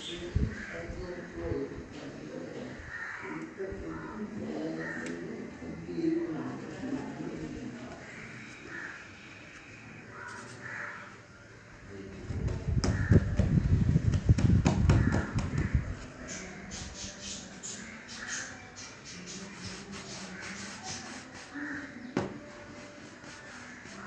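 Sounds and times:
faint background voices: 0.0 - 24.0
dough thumping on wooden table: 14.1 - 15.8.

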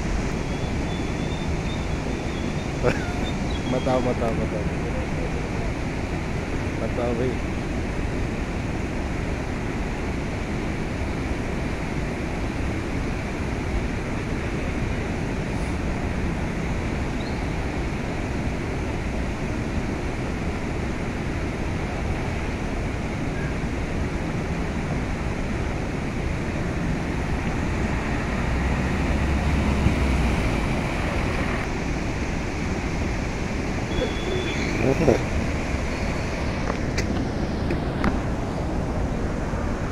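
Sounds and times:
floodwater rushing: 0.0 - 39.9.

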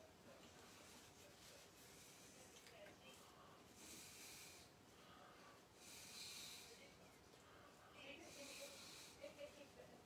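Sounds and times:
faint breath-like hiss: 0.5 - 9.7.

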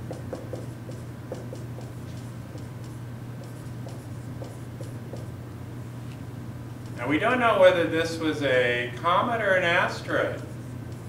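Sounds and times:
steady low hum: 0.0 - 11.0
marker scratching on whiteboard: 0.1 - 5.3, 10.1 - 11.0.

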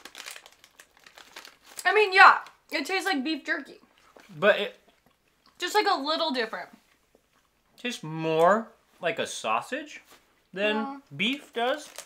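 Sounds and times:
snack packet crinkling: 0.0 - 2.8, 11.2 - 12.0
person speaking: 10.6 - 11.7.

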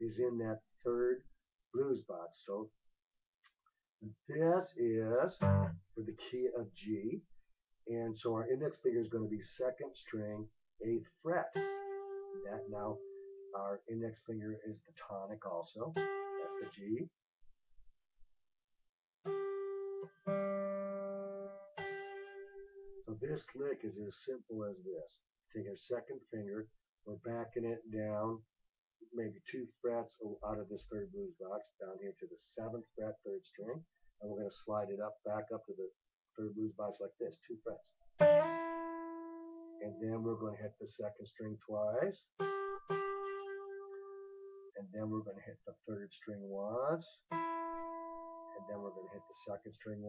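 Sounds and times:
acoustic guitar note ringing: 5.4 - 5.8.

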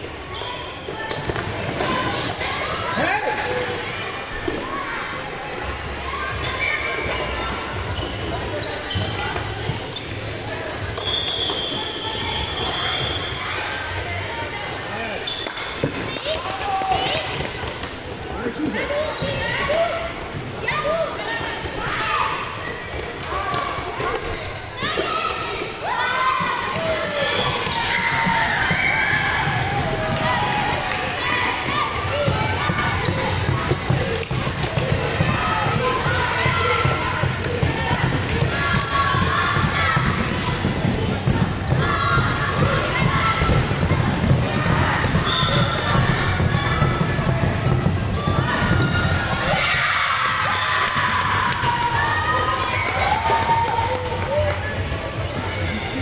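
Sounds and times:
children shouting: 24.7 - 55.9.

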